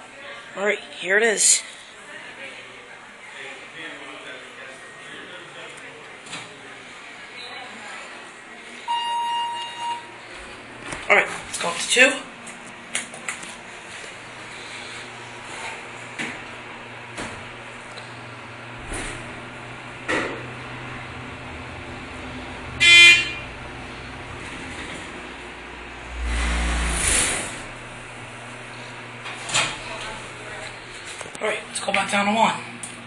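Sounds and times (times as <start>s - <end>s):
elevator chime: 8.9s - 10.1s
elevator pump motor hum: 13.4s - 31.9s
low rumble: 23.8s - 28.7s.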